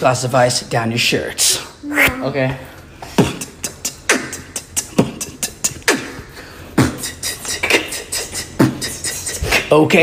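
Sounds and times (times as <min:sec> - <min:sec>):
beatboxing mouth clicks and hi-hats: 0:03.0 - 0:10.0
beatboxing vocal kick: 0:03.0 - 0:10.0.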